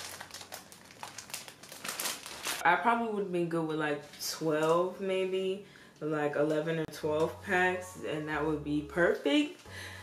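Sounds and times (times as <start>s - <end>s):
plastic wrapper crinkling: 0.0s - 2.6s.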